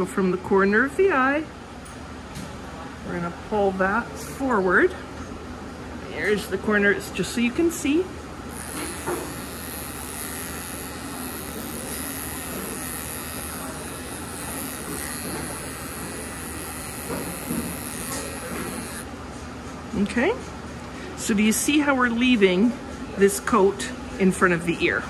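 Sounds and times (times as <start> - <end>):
electric dog clippers running: 7.2 - 19.1.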